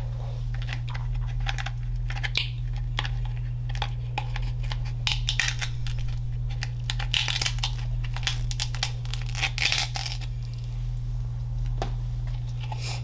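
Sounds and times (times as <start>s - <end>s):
steady low hum: 0.0s - 13.0s
crab shell cracking: 0.7s - 10.6s.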